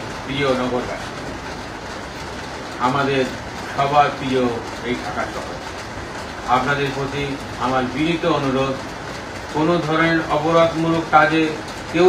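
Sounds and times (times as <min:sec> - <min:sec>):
room background noise: 0:00.0 - 0:12.0
man speaking: 0:00.3 - 0:01.3, 0:02.8 - 0:05.6, 0:06.5 - 0:08.9, 0:09.6 - 0:12.0.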